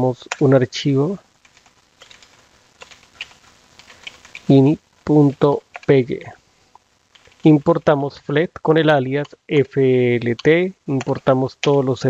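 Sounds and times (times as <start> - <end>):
computer keyboard typing: 1.4 - 4.6, 5.7 - 6.0, 7.1 - 7.6.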